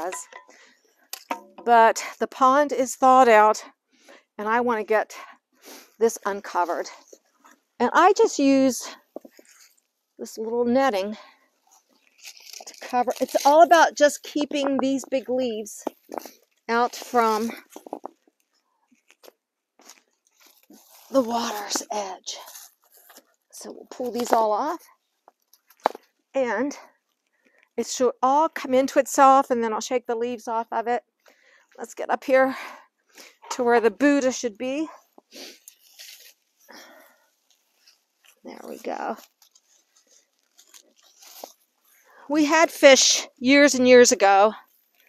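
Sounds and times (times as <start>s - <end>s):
dry leaves rustling and crunching: 12.2s - 13.7s
plastic netting rustle: 35.6s - 42.0s.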